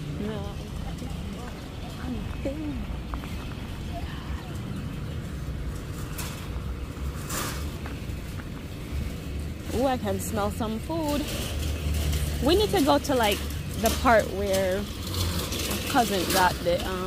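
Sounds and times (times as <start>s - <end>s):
faint distant voices: 0.0s - 6.5s.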